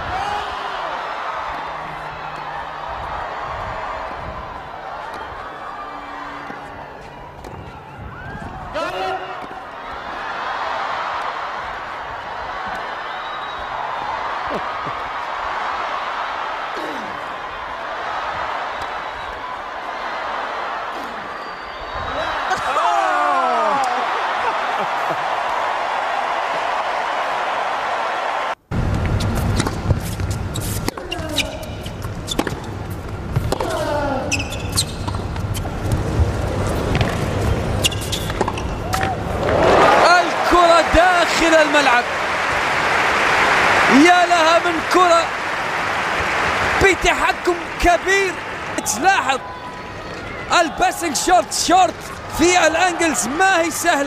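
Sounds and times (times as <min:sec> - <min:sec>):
crowd noise: 0:00.0 - 0:29.0, 0:30.0 - 0:54.0.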